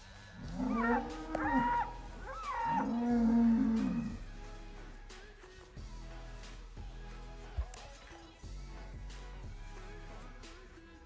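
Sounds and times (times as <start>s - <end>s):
bull bellowing: 0.4s - 4.3s.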